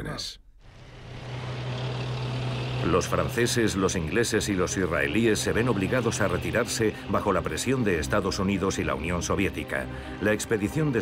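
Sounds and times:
tank engines droning: 0.6 - 11.0.

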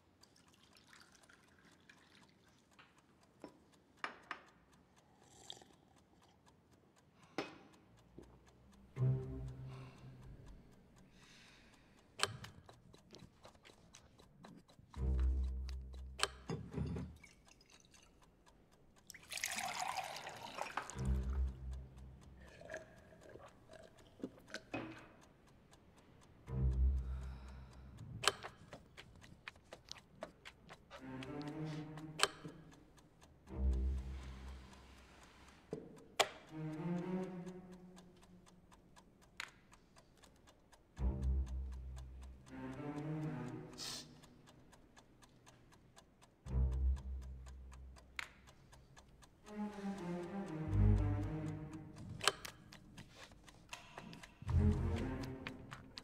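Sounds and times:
chess clock ticking rapidly: 0.0 - 56.0
sharp clicks: 21.0 - 34.8, 36.0 - 56.0.

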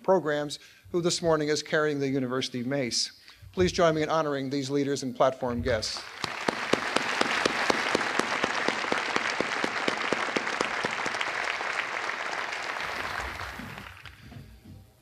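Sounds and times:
crowd applauding: 6.0 - 14.5.

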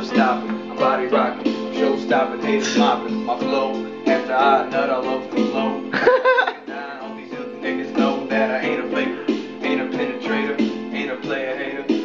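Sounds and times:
electronic keyboard music: 0.0 - 12.0.

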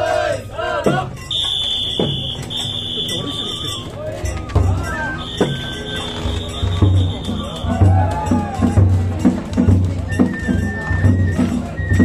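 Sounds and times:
drum strikes: 0.8 - 12.0.

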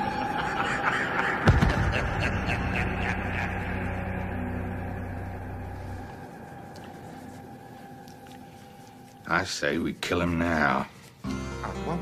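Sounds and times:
low droning hum: 0.0 - 9.3.

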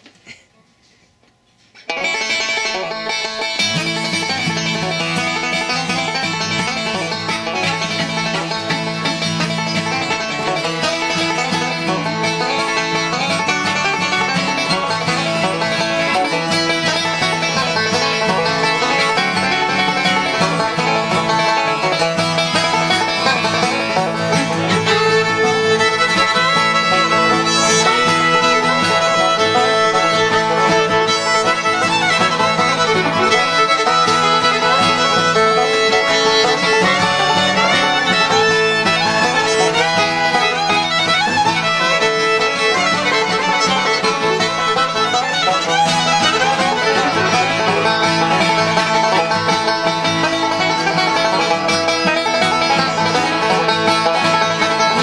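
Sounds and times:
banjo picked fast: 1.8 - 55.0
fiddle: 1.8 - 55.0.

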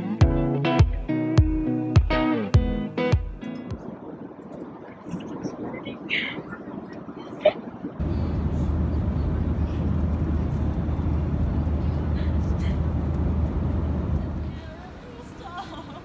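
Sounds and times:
jet engine cabin rumble: 3.7 - 15.0.

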